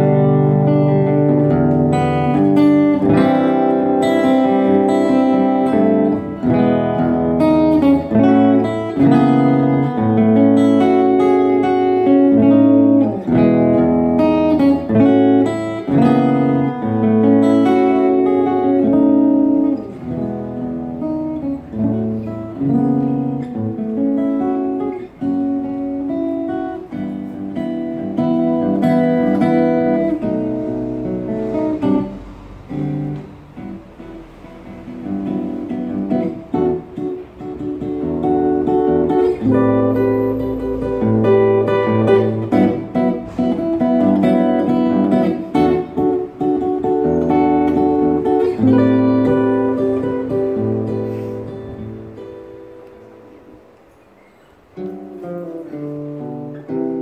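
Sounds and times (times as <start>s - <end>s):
solo acoustic jazz guitar: 0.0s - 57.0s.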